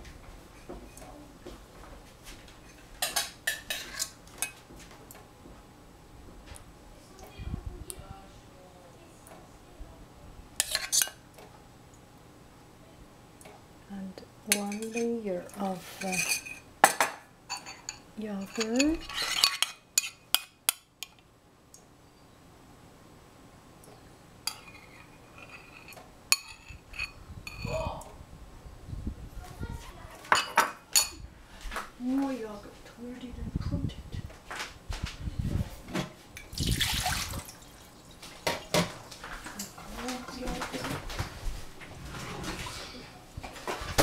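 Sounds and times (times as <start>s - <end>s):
metal spoon clinking kitchenware: 14.5s - 15.2s, 16.0s - 21.2s.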